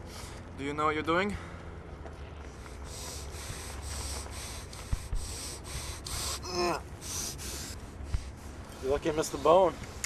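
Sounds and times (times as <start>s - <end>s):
man breathing hard: 2.5s - 8.9s
man groaning: 6.4s - 6.8s.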